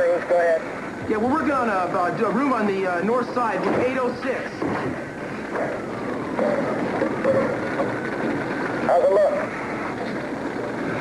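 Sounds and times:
muffled voices: 0.0 - 11.0
steady rushing noise: 0.0 - 11.0.

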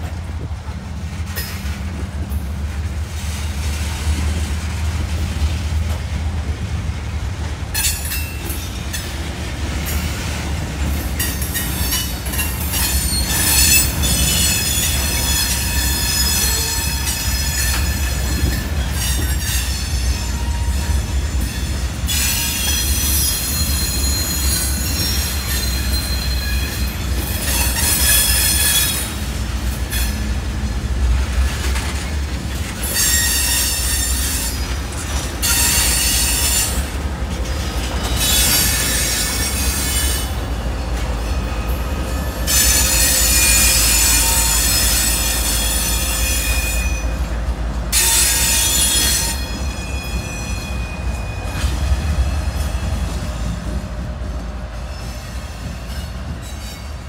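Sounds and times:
freight train cars rumbling: 0.0 - 57.0
train wheels squealing: 11.2 - 29.2, 32.8 - 47.3, 47.9 - 53.8, 54.7 - 57.0.

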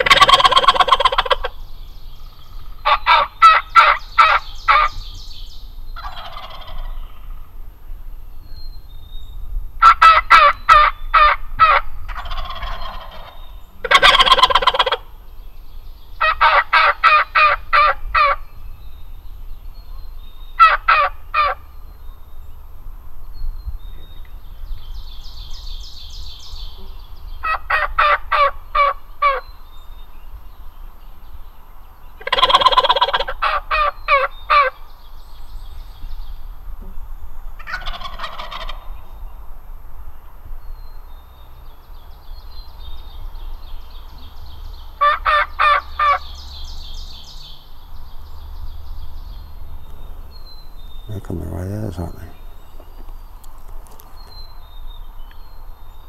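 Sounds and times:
turkey yelps: 0.0 - 1.5, 2.8 - 4.9, 9.8 - 13.3, 13.9 - 15.0, 16.2 - 18.4, 20.6 - 21.6, 27.4 - 29.4, 32.2 - 34.7, 37.6 - 38.9, 45.0 - 46.2
turkeys gobbling: 0.0 - 1.5, 2.8 - 4.9, 6.0 - 7.4, 9.8 - 15.0, 16.2 - 18.4, 27.4 - 29.4, 32.2 - 34.7, 37.6 - 38.9, 45.0 - 46.2, 49.9 - 54.2.

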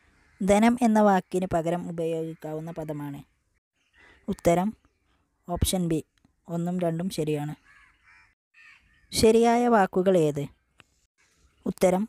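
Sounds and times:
bird harsh call: 7.6 - 9.1.

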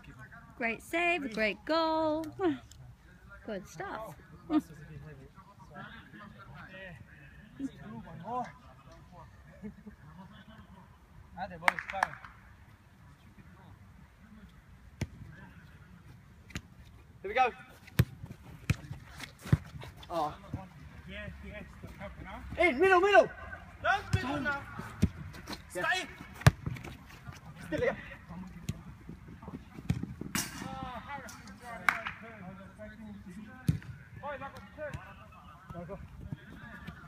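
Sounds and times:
faint players' voices: 0.0 - 37.0.

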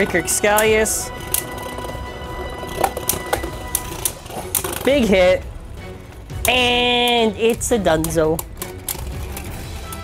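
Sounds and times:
background music: 0.0 - 10.0
spinning tops whirring: 0.0 - 10.0.

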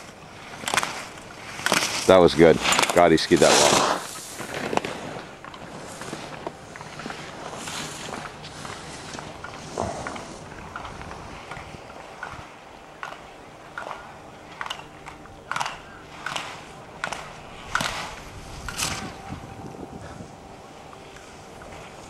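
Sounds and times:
skis scraping on hard snow: 0.0 - 12.5.

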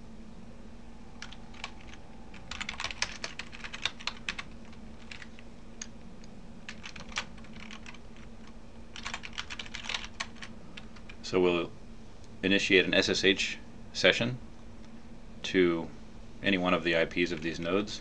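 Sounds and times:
faint low hum: 0.0 - 18.0
computer keyboard typing: 1.2 - 5.9, 6.7 - 11.2.

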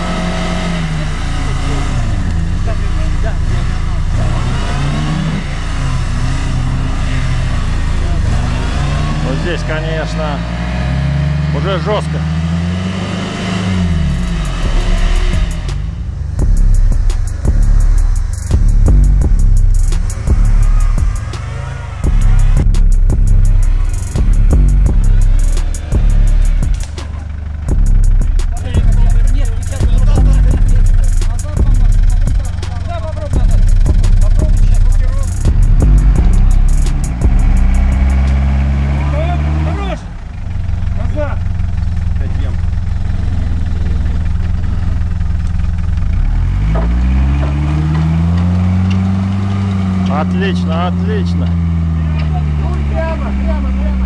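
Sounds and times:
engine revving in mud: 0.0 - 54.0
background music with pulsing beat: 13.8 - 39.0.

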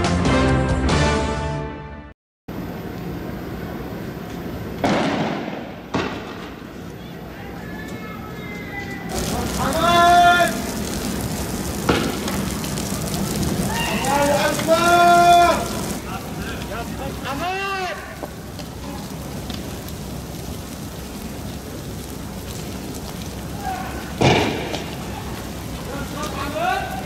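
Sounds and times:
street noise: 2.5 - 27.0
sharp bangs: 4.8 - 6.6, 9.1 - 12.5, 24.2 - 25.0
men shouting long calls: 7.5 - 10.9, 13.5 - 18.2, 23.5 - 24.2, 25.0 - 27.0.

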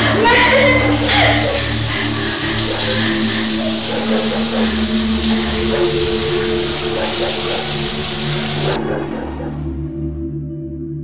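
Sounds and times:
running water rushing: 0.0 - 9.6
low sustained music tones: 0.0 - 11.0.

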